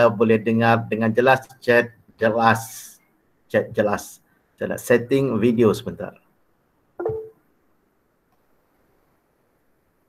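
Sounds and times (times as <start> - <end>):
electronic tone: 7.0 - 7.4.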